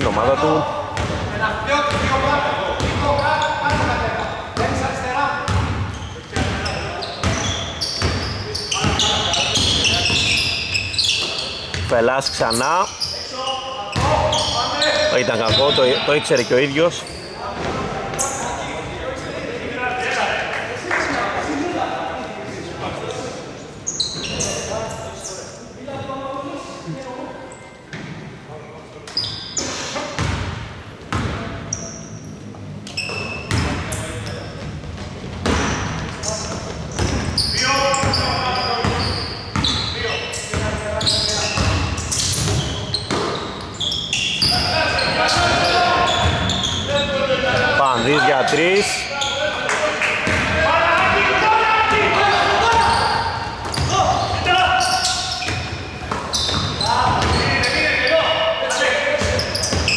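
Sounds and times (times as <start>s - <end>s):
echoing voices: 0.0s - 59.9s.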